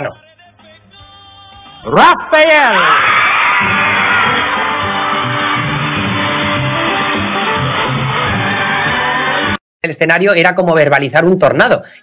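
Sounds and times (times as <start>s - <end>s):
band playing guitar and bass: 3.6s - 9.6s.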